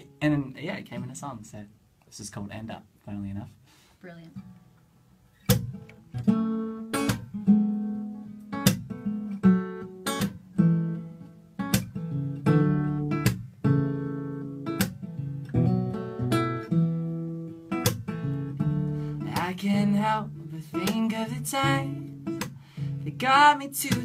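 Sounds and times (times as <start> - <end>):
acoustic guitar strummed chords: 5.4 - 24.0.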